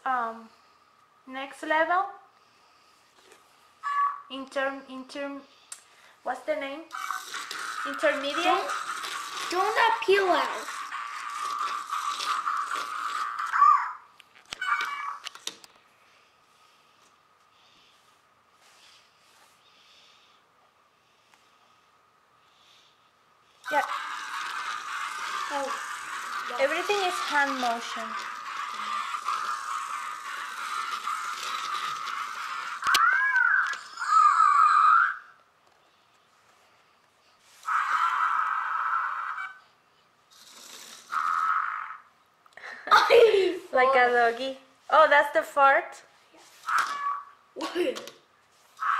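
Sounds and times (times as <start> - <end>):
buzzy crackly electronic sound: 6.9 - 14.0, 23.6 - 33.8
robot toy whirring: 6.9 - 15.6, 23.6 - 35.4, 37.5 - 39.6, 40.3 - 42.1, 46.4 - 47.3, 48.0 - 48.9.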